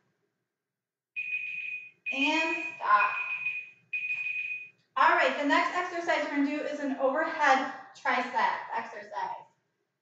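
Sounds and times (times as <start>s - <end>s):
interval timer beeping: 1.2s - 4.7s.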